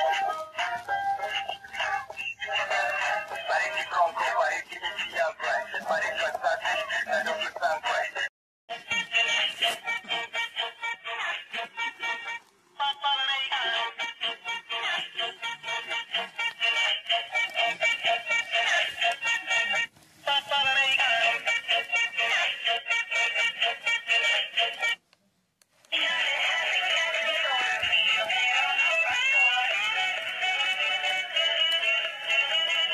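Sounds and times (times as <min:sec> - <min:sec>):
electronic song from toy speaker: 0:00.0 - 0:25.0, 0:25.9 - 0:32.9.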